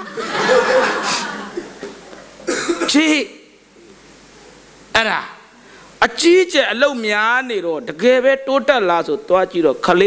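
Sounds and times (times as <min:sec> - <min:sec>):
person coughing: 0:02.4 - 0:03.2.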